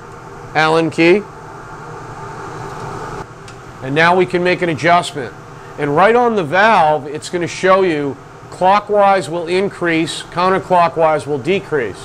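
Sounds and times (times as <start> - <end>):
gas boiler humming: 0.0 - 12.0.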